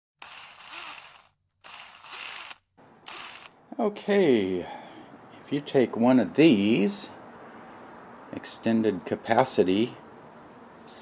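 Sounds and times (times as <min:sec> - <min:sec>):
bursts of mechanical noise: 0:00.2 - 0:03.5.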